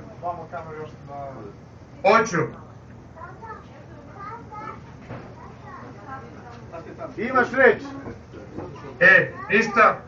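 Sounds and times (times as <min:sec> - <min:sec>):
background chatter of people: 0:00.0 - 0:10.0.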